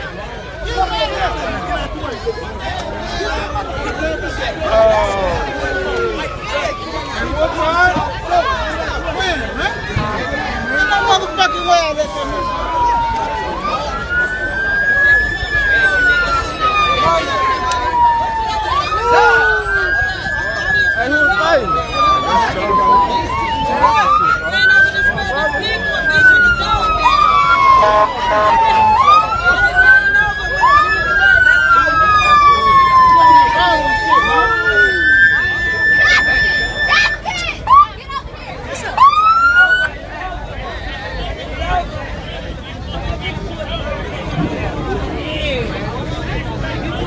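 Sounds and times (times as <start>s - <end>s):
emergency siren wailing: 0.0s - 47.0s.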